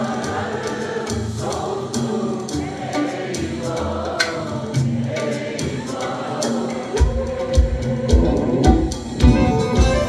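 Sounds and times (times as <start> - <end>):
folk band playing: 0.0 - 10.0
percussion strokes: 0.0 - 10.0.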